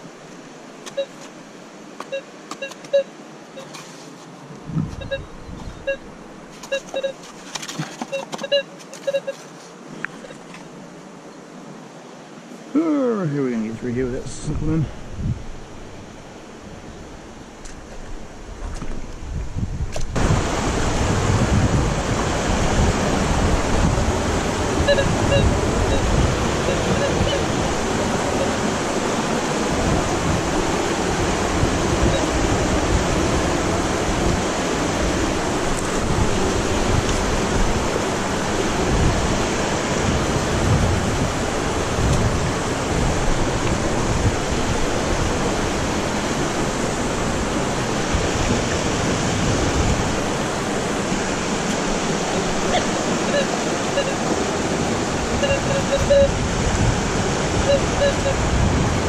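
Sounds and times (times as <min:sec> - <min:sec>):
river rushing: 0:00.0 - 0:59.0.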